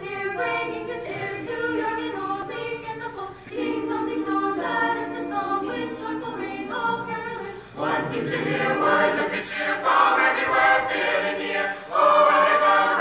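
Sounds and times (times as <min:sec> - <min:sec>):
choir singing a cappella: 0:00.0 - 0:13.0.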